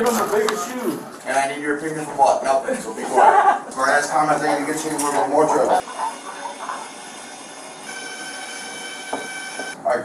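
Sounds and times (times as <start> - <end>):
scanner high-pitched whine: 5.8 - 9.8.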